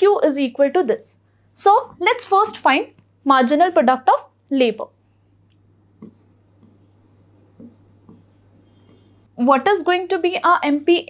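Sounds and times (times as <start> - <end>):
low steady hum: 0.0 - 11.0
stylus tapping and stroking screen: 2.4 - 3.2, 5.3 - 10.0.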